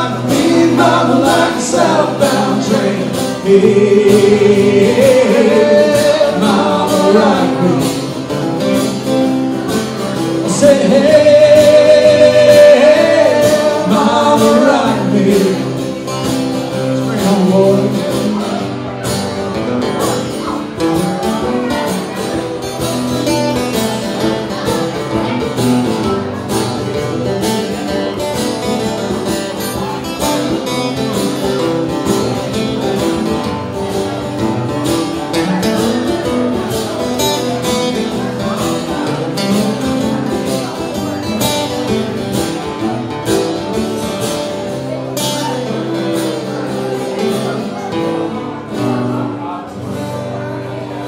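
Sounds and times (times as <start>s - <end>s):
acoustic guitars strumming: 0.0s - 51.0s.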